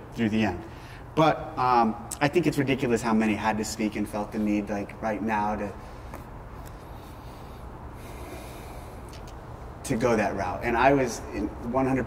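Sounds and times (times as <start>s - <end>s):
low room hum: 0.0s - 12.0s
man breathing out: 6.9s - 9.2s.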